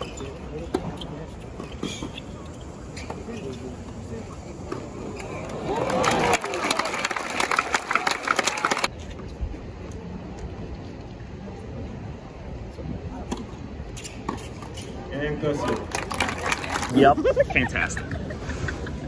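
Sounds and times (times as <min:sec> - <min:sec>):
murmur of crowd voices: 0:00.0 - 0:19.0
spectators clapping: 0:05.6 - 0:08.9, 0:15.7 - 0:17.1.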